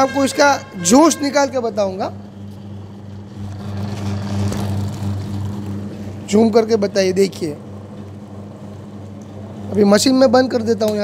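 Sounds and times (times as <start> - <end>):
juice machine motor hum: 0.0 - 11.0
rollers crushing cane: 2.4 - 6.0.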